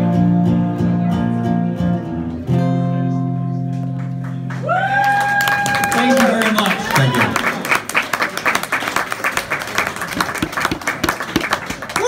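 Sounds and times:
small audience applauding: 4.0s - 12.0s.

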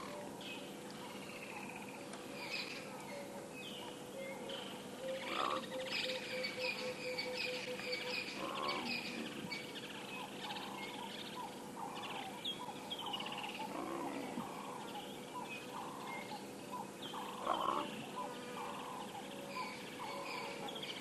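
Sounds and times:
birds chirping: 0.0s - 21.0s
leopard calling: 13.6s - 20.6s.

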